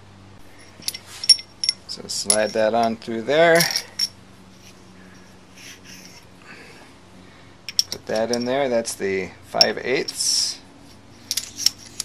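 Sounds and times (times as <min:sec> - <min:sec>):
faint steady hum: 0:00.0 - 0:12.0
soft rustling: 0:00.4 - 0:01.9
metal tool parts handled: 0:00.5 - 0:06.2, 0:07.7 - 0:08.6, 0:09.6 - 0:12.0.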